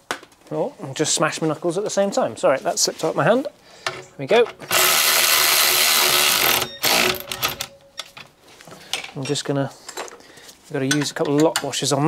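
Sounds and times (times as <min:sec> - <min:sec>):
power ratchet spinning bolt: 0:04.6 - 0:07.7
ratchet clicking: 0:04.6 - 0:07.7.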